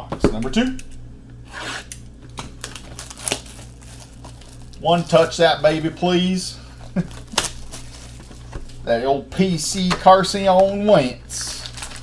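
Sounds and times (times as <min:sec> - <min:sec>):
cellophane crinkling: 0:01.6 - 0:08.9, 0:09.8 - 0:12.0.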